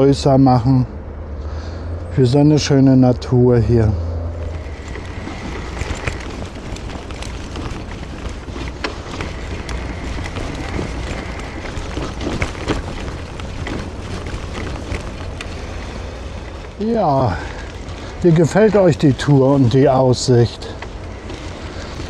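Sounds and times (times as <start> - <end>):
low wind rumble on microphone: 0.6 - 22.0
faint clicks and ticks: 4.4 - 22.0.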